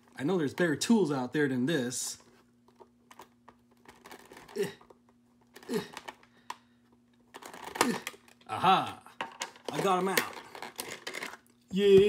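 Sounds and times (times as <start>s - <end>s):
person grunting: 4.5s - 4.9s, 5.6s - 6.0s, 7.8s - 9.1s.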